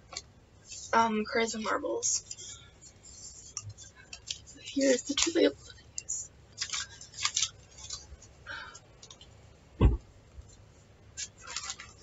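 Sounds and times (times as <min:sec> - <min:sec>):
paper labels rustling: 0:00.1 - 0:09.4, 0:10.4 - 0:12.0
dull thump: 0:09.8 - 0:10.1.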